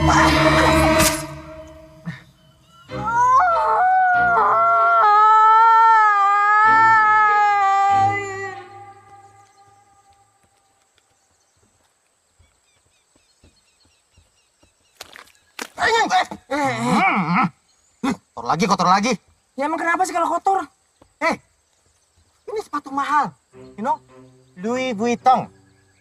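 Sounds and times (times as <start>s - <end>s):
woman screaming: 2.9s - 9.4s.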